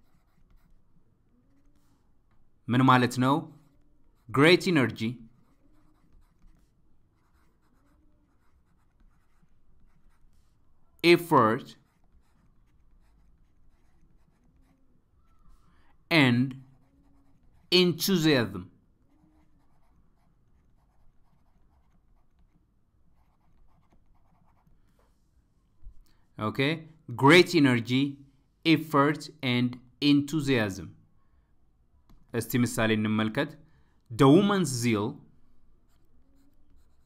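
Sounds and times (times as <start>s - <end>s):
stylus scratching on tablet: 0.0s - 25.3s, 35.5s - 37.0s.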